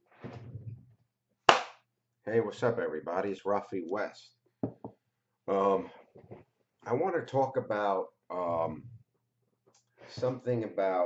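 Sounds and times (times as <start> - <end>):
sharp smack: 1.5 - 1.8.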